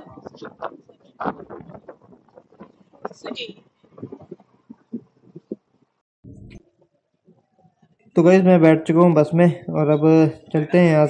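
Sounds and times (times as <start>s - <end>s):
bus interior rumble: 0.0s - 6.6s.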